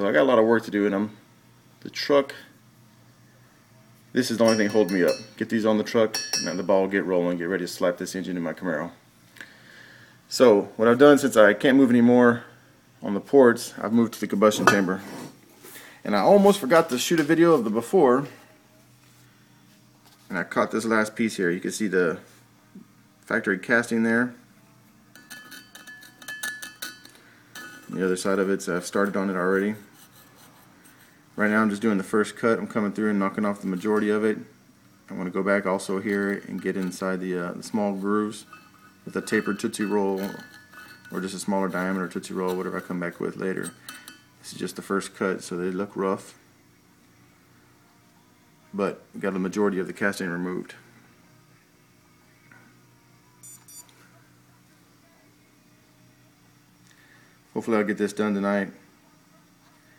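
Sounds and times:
faint steady hum: 0.0s - 59.9s
metal pick tapping and scraping metal: 4.2s - 5.4s, 6.0s - 6.8s, 14.6s - 15.0s, 25.1s - 31.2s, 35.8s - 44.4s
short high-pitched electronic beeps: 53.4s - 53.9s.

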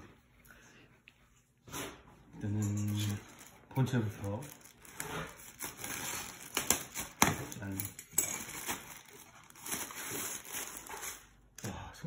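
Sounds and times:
plastic crinkling: 2.8s - 11.5s.

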